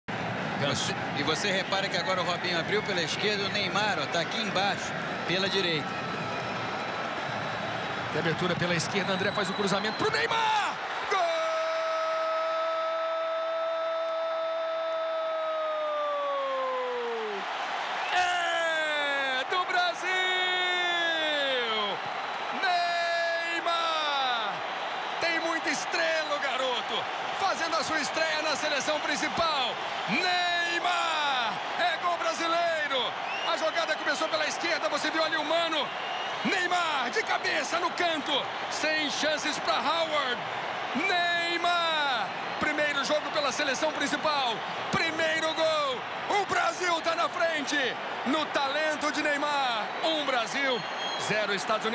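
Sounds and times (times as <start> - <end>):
stadium crowd noise: 0.0 - 51.9
man commentating: 0.5 - 6.0, 8.0 - 51.9.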